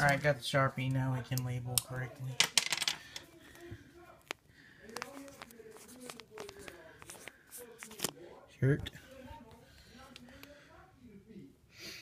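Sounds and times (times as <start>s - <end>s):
marker scratching on plastic bag: 5.0s - 8.0s.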